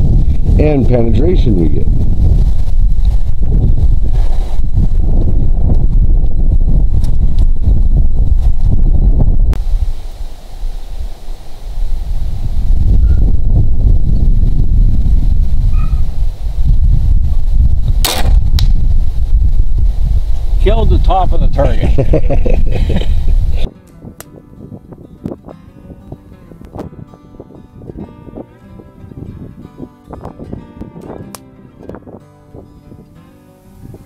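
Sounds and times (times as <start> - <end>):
wind buffeting microphone: 0.0 - 34.0
bolt striking target: 18.0 - 18.8
crossbow shot crack: 18.0 - 18.9.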